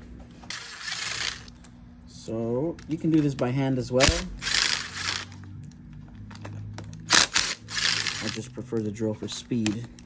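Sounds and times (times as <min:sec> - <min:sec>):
cordless drill rattling: 0:00.5 - 0:01.5, 0:03.0 - 0:05.4, 0:07.1 - 0:08.5.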